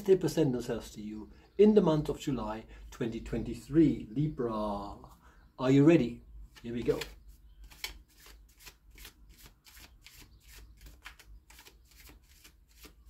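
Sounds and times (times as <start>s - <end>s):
cards being shuffled: 6.5s - 13.0s.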